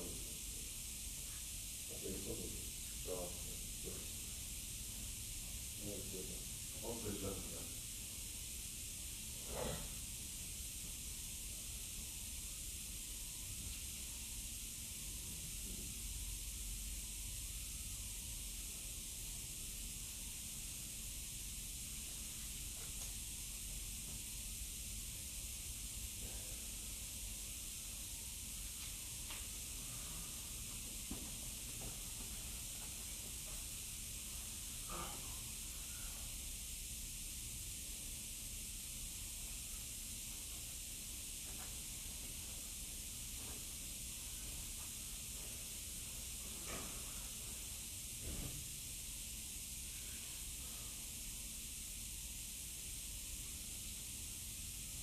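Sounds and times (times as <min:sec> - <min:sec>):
steady hiss: 0:00.0 - 0:55.0.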